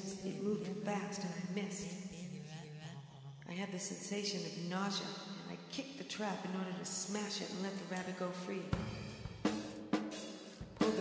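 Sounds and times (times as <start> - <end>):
drum hits with cymbal crashes: 8.8 - 11.0.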